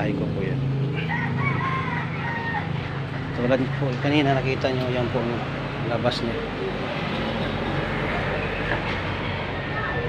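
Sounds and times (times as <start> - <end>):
rooster crowing: 0.9 - 2.9.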